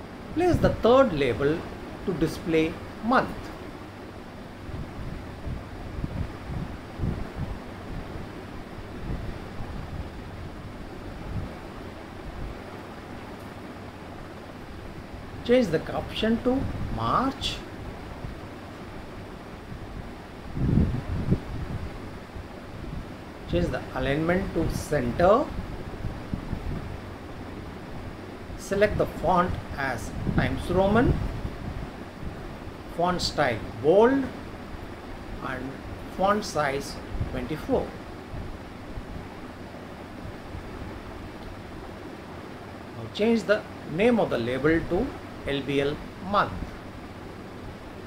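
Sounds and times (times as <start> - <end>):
even hiss: 0.0 - 48.0.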